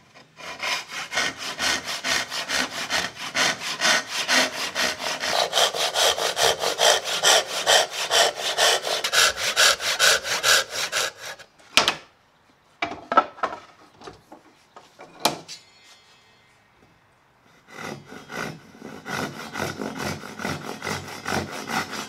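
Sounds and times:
hand saw cutting wood: 0.0s - 11.5s, 17.6s - 22.0s.

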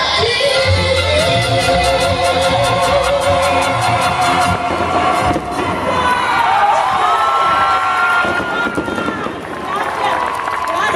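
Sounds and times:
crowd cheering and shouting: 2.4s - 10.9s.

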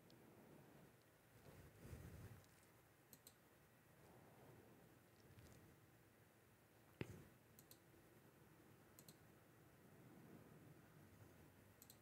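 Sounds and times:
computer mouse clicks: 2.4s - 3.4s, 7.0s - 7.9s, 8.9s - 9.2s, 11.8s - 12.0s.

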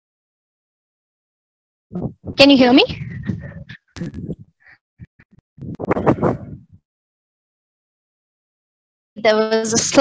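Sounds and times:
garbled speech over video call: 1.9s - 6.8s, 9.2s - 10.0s.

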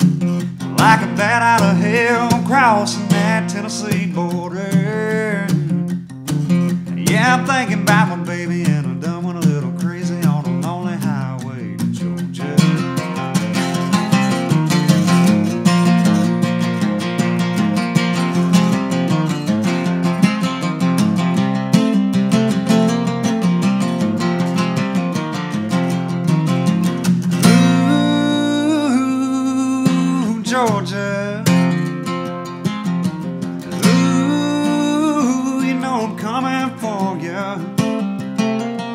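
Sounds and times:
man singing: 0.0s - 5.8s, 6.7s - 14.1s, 27.4s - 31.9s, 33.7s - 38.0s
acoustic guitar strumming: 0.0s - 38.9s.

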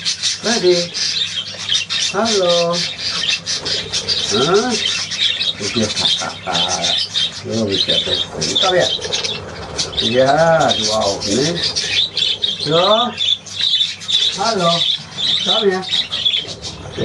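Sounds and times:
budgerigars chattering and chirping: 0.0s - 17.0s.

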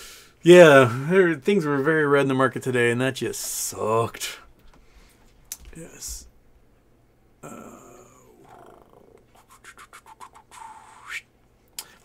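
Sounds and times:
man saying uh: 5.7s - 6.3s, 7.4s - 9.2s.

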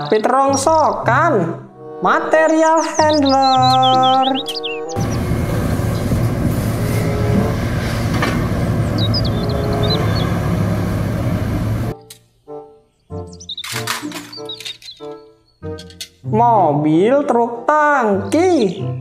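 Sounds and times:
light background music: 0.0s - 19.0s
bird chirps: 2.6s - 5.3s, 8.8s - 10.4s, 12.9s - 15.8s
heavy machine rumbling: 5.0s - 11.9s.

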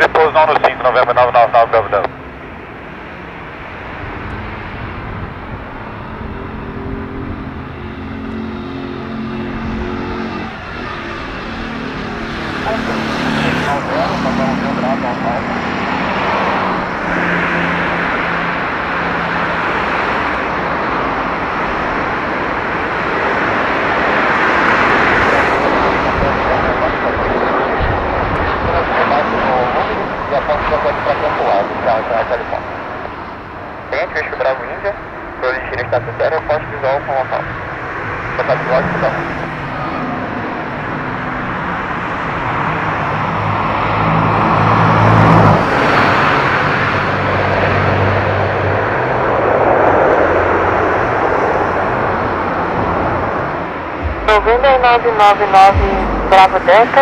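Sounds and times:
jet landing: 0.0s - 57.0s
low hum dropping in pitch: 2.1s - 19.7s, 52.2s - 57.0s.

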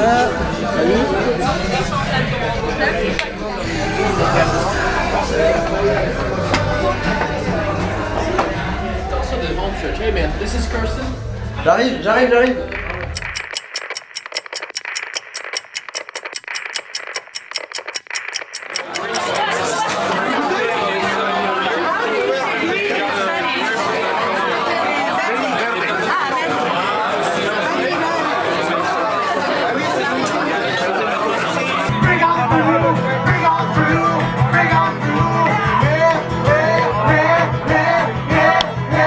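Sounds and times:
bar crowd talking: 0.0s - 13.4s, 18.6s - 39.0s
clicking static glitch effect: 12.6s - 19.5s.

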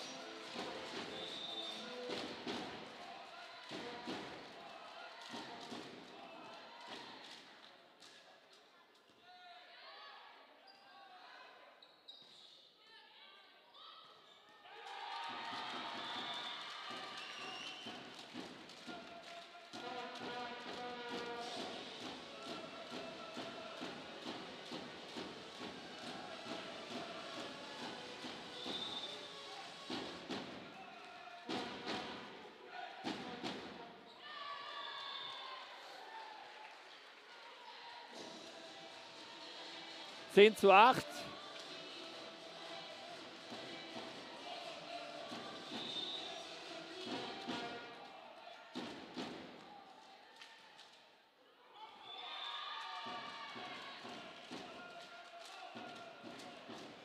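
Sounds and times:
players' voices echoing: 40.3s - 41.3s.

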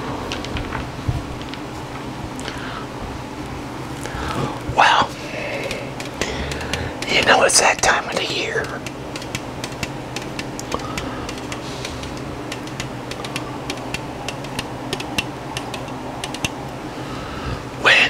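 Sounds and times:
fingernails tapping on can: 5.6s - 16.6s.

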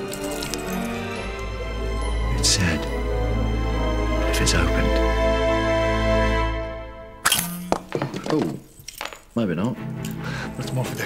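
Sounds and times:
orchestral film underscore: 0.0s - 8.0s, 9.4s - 11.0s.

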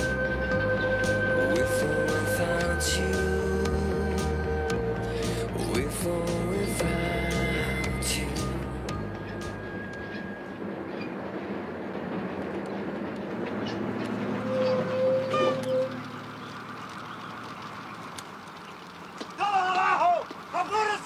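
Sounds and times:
bus rumble: 0.0s - 21.0s
brief steady tone: 14.4s - 16.2s
man shouting loudly: 19.4s - 21.0s.

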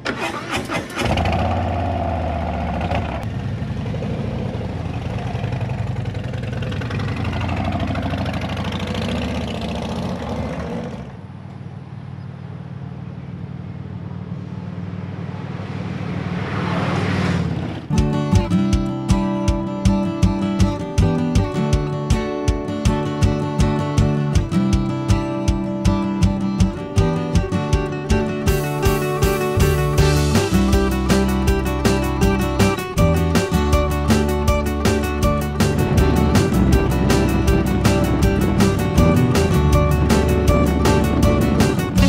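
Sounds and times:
motorcycle engines accelerating: 0.9s - 18.0s, 34.8s - 42.0s
acoustic guitar music: 17.9s - 42.0s.

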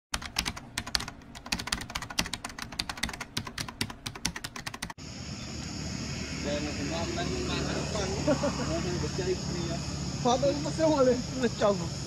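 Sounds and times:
rapid sharp clicks: 0.2s - 5.0s
outdoor background hiss: 0.2s - 12.0s.

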